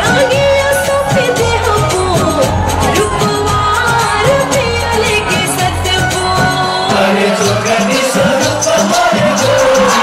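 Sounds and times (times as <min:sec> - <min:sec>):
person singing: 0:00.0 - 0:10.0
steady drum beat: 0:00.0 - 0:10.0.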